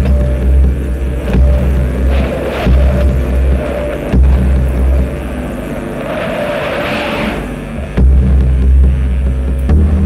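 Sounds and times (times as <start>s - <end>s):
deep bass rumbles: 0.0s - 10.0s
electronic hissing swell: 0.6s - 8.0s.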